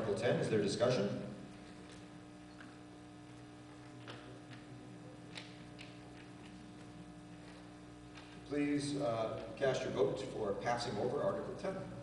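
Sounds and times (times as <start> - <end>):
low electrical hum: 0.0 - 12.0
faint clicks and taps: 3.8 - 4.7, 5.3 - 8.4.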